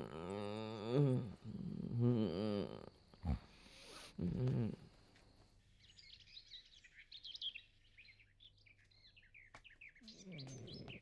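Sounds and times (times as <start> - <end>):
person snoring loudly: 0.0 - 4.9.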